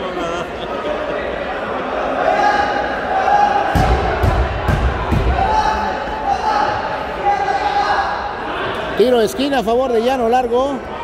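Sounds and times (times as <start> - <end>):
chatter of people: 0.0 - 11.0.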